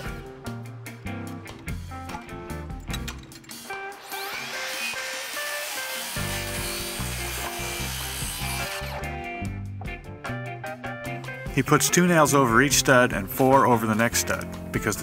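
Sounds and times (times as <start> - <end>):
background music: 0.0 - 15.0
circular saw cutting wood: 3.5 - 9.2.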